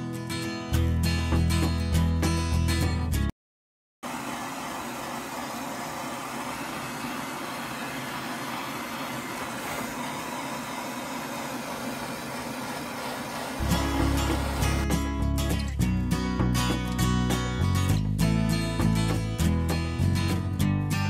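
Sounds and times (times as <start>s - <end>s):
gas torch hissing: 4.8s - 14.9s.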